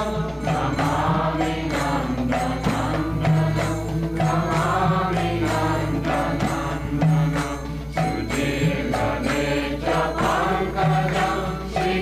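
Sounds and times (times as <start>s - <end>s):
group devotional singing: 0.0s - 12.0s
small hand cymbals: 0.0s - 12.0s.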